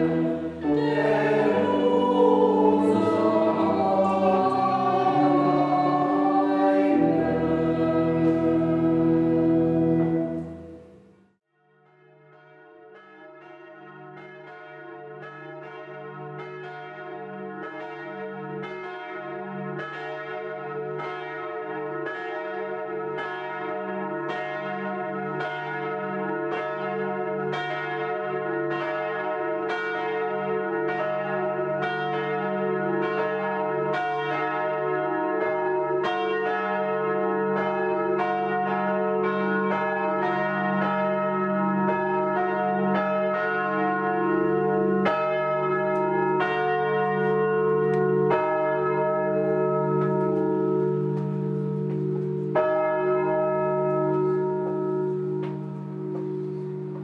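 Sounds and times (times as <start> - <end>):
church bells ringing in a peal: 0.0 - 10.9, 11.9 - 57.0.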